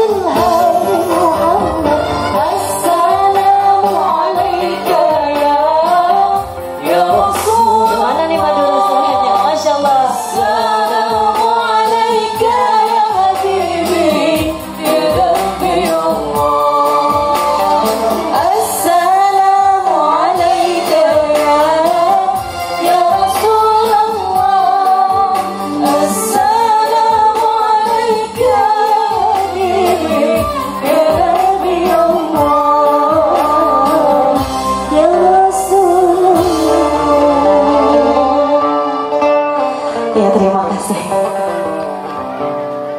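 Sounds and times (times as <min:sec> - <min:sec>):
keyboard: 0:00.0 - 0:42.9.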